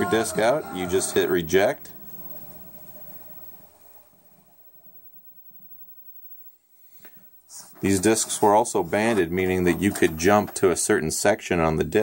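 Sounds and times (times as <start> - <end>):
disc player winding down: 0.0 - 4.6.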